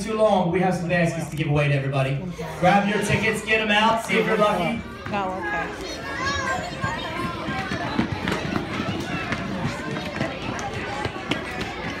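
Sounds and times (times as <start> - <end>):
crowd chatter: 0.0 - 12.0
children running on wooden floor: 4.9 - 12.0.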